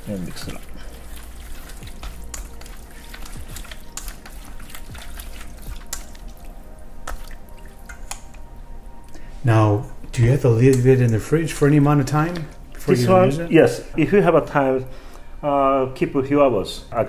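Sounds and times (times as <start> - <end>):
chopsticks stirring sticky sauce: 0.0 - 8.5.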